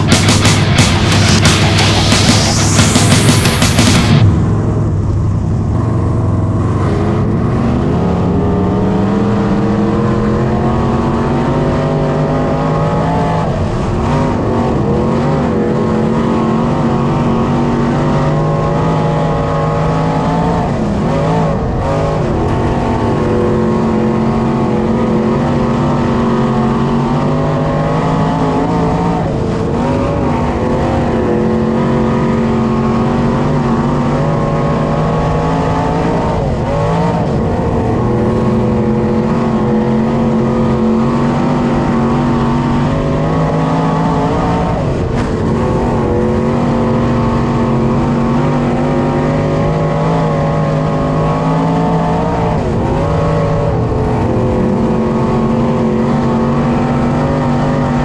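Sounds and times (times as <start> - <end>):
race car engine running hard: 0.0 - 58.0.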